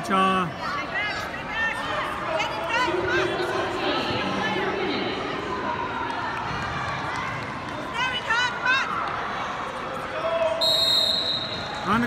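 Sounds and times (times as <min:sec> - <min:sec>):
crowd hubbub: 0:00.0 - 0:12.0
referee's whistle blast: 0:10.6 - 0:11.8.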